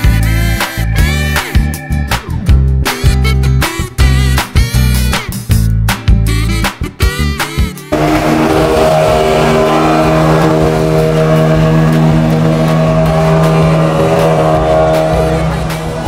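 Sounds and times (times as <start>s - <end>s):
outboard motor droning: 7.9s - 16.0s.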